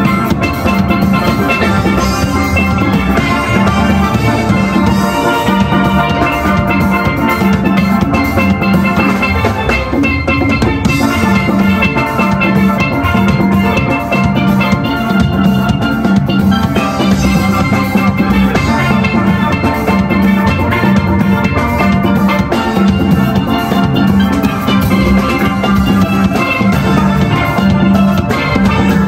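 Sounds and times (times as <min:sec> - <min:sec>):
steady drum beat: 0:00.0 - 0:29.0
steelpans playing melody: 0:00.0 - 0:29.0.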